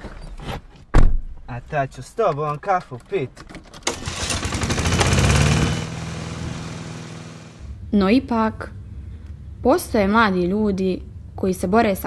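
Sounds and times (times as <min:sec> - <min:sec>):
car engine starting and idling: 0:03.7 - 0:07.8.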